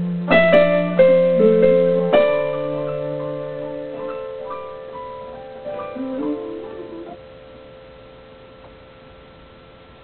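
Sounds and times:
digital piano notes: 0:00.0 - 0:08.7.

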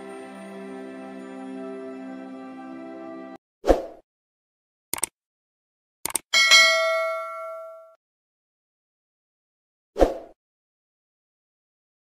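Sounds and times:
notification bell ding: 0:06.4 - 0:08.0.

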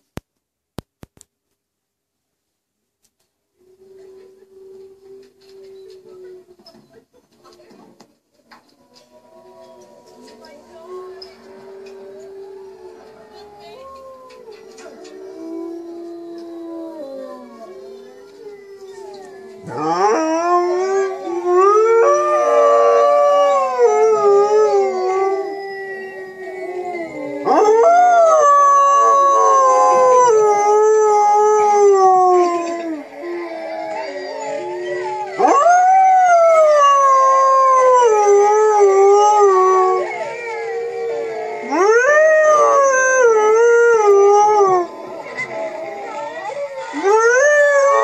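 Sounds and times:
wolves howling in chorus: 0:09.0 - 0:48.0.

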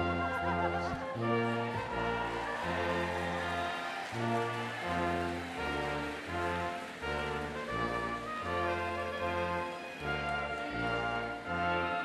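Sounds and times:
slow processional band music: 0:00.0 - 0:12.0.

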